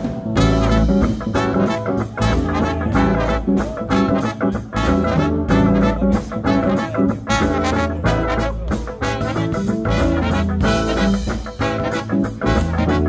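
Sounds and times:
live funk band playing: 0:00.0 - 0:13.0.

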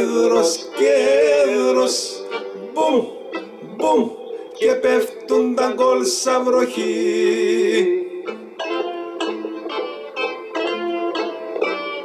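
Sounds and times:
plucked-string melody: 0:00.0 - 0:04.7, 0:08.0 - 0:12.0
man singing with vibrato: 0:00.0 - 0:08.9
strummed guitar: 0:07.9 - 0:12.0.

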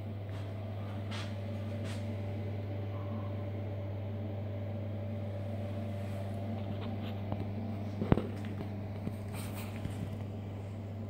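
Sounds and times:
extractor fan humming: 0:00.0 - 0:11.0.

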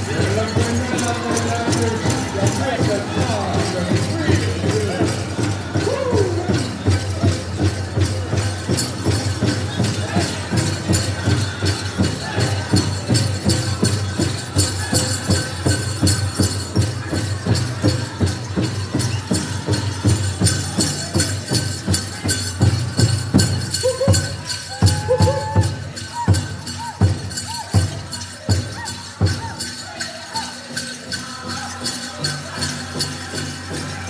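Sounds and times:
big drum beating fast: 0:00.0 - 0:28.6
bells rattling: 0:00.0 - 0:34.0
group of singers: 0:09.4 - 0:22.6, 0:26.2 - 0:34.0.

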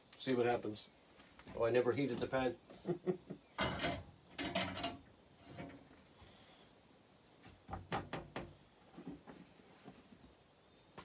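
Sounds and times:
cookware clattering: 0:03.6 - 0:05.0.

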